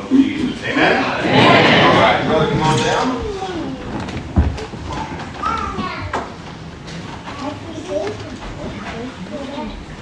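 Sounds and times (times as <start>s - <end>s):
murmuring voices: 0.0s - 6.4s.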